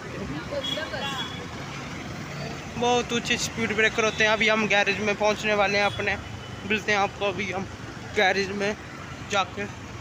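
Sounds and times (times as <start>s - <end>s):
traffic and road noise: 0.0s - 10.0s.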